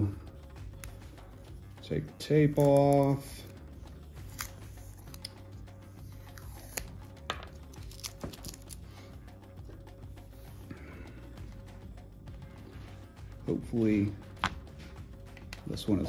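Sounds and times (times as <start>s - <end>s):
quiet background music: 0.0s - 16.0s.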